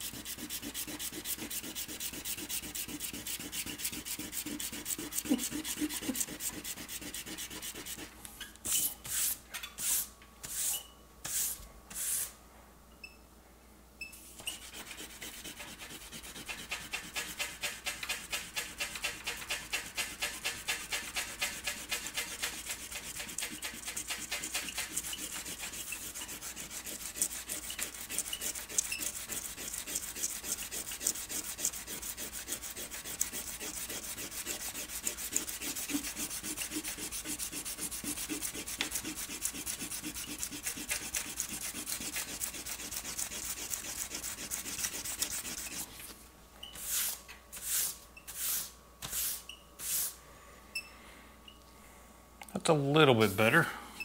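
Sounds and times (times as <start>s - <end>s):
eraser rubbing on paper: 0.0s - 8.1s, 11.3s - 12.3s, 14.3s - 45.9s.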